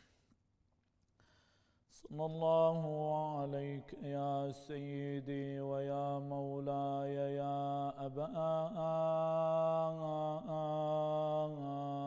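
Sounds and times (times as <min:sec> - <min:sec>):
man chanting: 0:02.0 - 0:12.0.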